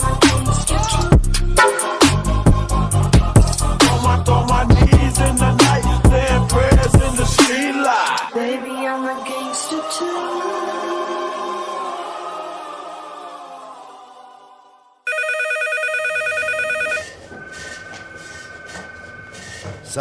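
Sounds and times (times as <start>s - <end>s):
music: 0.0s - 14.8s, 17.2s - 19.9s
electronic telephone ringing: 15.1s - 17.2s.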